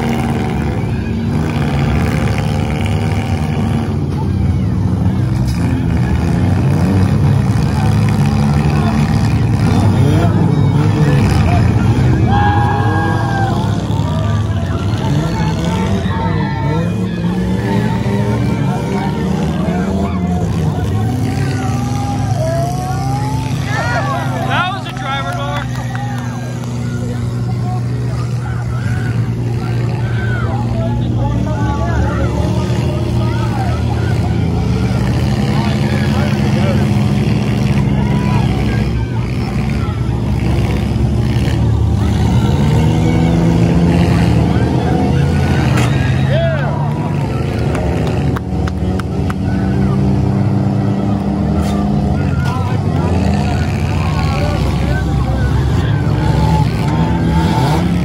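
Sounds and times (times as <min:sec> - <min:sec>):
car engines revving: 0:00.0 - 0:58.0
cars crashing: 0:00.0 - 0:58.0
crowd voices: 0:00.0 - 0:58.0.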